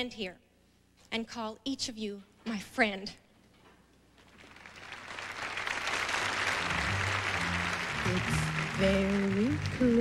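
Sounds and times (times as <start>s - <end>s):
audience applauding: 4.3s - 10.0s.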